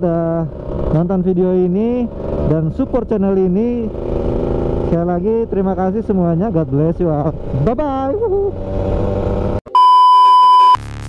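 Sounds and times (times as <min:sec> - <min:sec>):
two-stroke engine running: 0:00.5 - 0:06.4
loud electronic beep: 0:09.7 - 0:11.0
electronic music: 0:10.6 - 0:11.0.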